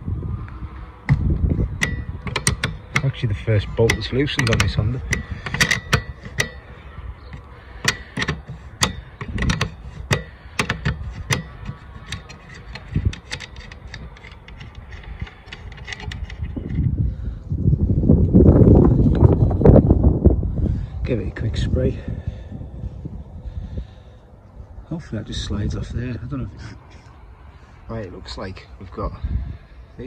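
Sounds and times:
ratchet spanner clicking: 1.7s - 6.6s, 7.4s - 16.7s
low rumble: 16.4s - 30.0s.

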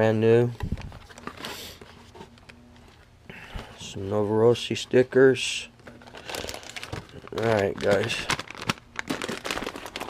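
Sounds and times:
plastic bag crinkling: 5.9s - 10.0s.

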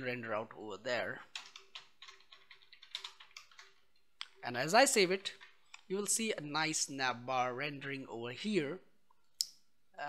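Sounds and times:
faint keyboard typing: 1.1s - 6.2s.

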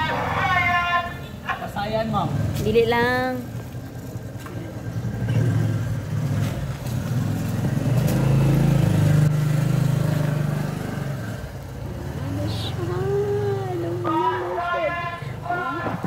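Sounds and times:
vehicle passing by: 1.6s - 16.0s.

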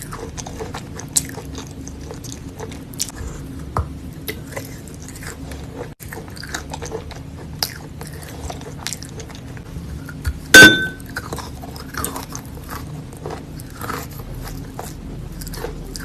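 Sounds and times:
chewing crunching: 0.0s - 16.0s.

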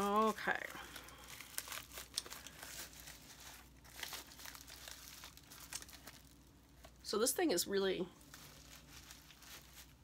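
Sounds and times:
packaging crinkling: 0.0s - 7.0s, 8.2s - 10.0s.

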